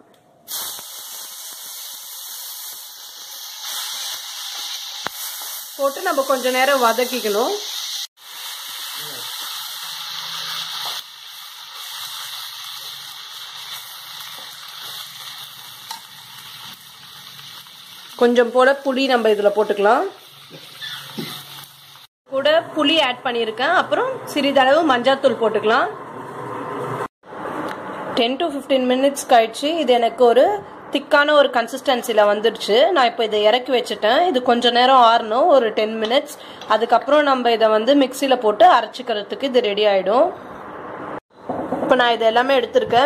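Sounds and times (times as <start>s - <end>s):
tomatoes sizzling in a pan: 0.5s - 22.1s.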